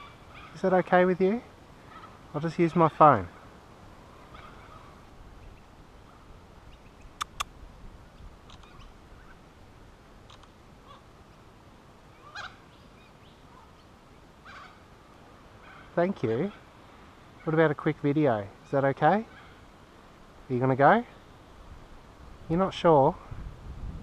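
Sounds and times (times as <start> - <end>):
faint bird calls: 0.0 - 0.8, 1.8 - 9.4, 10.3 - 11.5, 12.1 - 17.6, 18.6 - 19.8.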